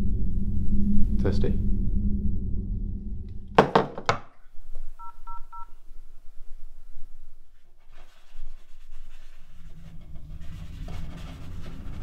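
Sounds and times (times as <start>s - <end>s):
phone keypad beeps: 5.0s - 5.7s.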